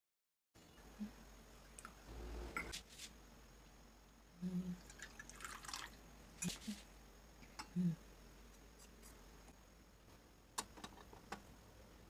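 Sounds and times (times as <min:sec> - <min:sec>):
person humming: 0:04.4 - 0:04.9, 0:07.6 - 0:08.1.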